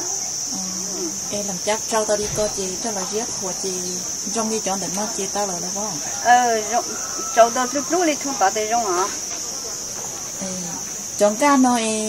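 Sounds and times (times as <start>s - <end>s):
high-pitched insect chirring: 0.0s - 12.0s
people talking: 0.0s - 12.0s.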